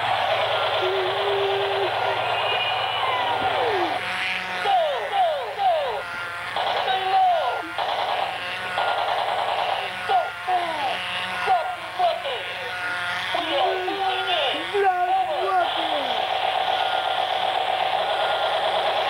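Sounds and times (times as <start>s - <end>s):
small motor buzzing: 0.0s - 19.0s.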